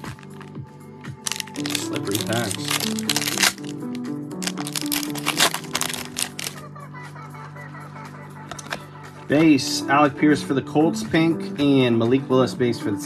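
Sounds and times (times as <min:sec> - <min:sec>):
foil pack tearing and crackling: 0:01.3 - 0:06.6.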